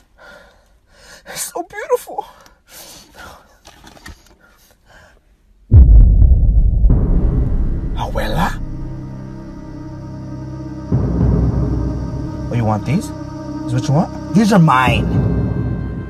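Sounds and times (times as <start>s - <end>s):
loud deep boom rumbling: 5.7s - 13.5s.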